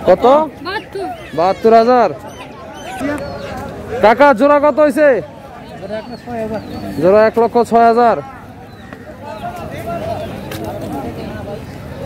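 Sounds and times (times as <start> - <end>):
man calling loudly: 0.0 - 2.4
crowd voices: 0.0 - 12.0.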